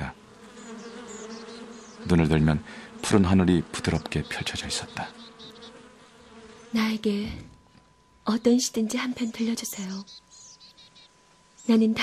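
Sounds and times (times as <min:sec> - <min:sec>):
honeybee buzzing: 0:00.0 - 0:12.0.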